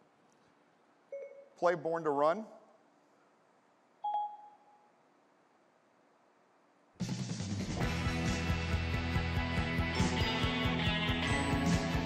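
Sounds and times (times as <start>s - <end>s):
short phone beep: 1.1s - 1.6s, 4.0s - 4.9s.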